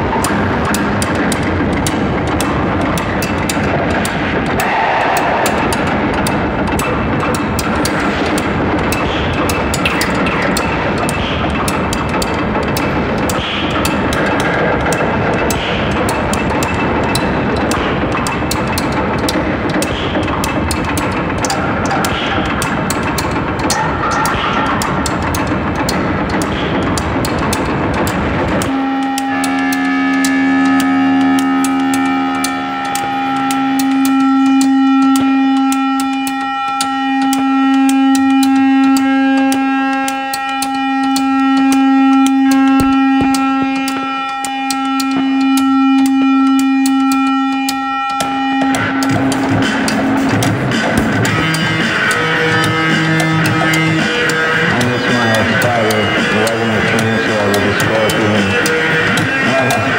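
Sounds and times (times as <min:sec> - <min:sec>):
distorted guitar: 0:00.0 - 0:59.9
fast clicking pulse: 0:00.0 - 0:59.9
sustained droning note: 0:00.0 - 0:59.9
drums: 0:48.2 - 0:59.9.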